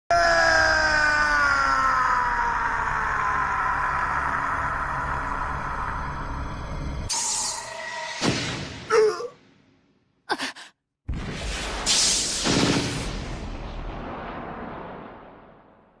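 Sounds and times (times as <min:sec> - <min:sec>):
man screaming in pain: 0:00.1 - 0:05.5, 0:08.9 - 0:09.4.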